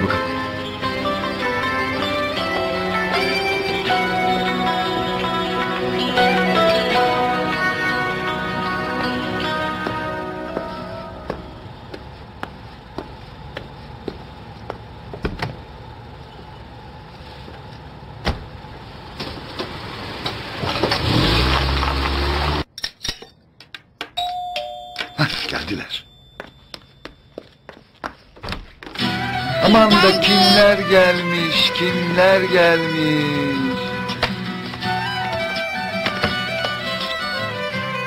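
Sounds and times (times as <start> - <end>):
car engine starting and revving: 18.0 - 22.7
scattered clicks and knocks: 22.8 - 24.4
doorbell chiming: 24.2 - 27.6.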